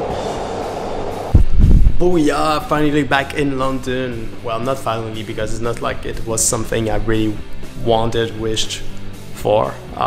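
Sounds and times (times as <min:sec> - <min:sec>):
train rushing: 0:00.0 - 0:02.3
loud low rumble: 0:00.0 - 0:03.0
faint music: 0:02.0 - 0:10.0.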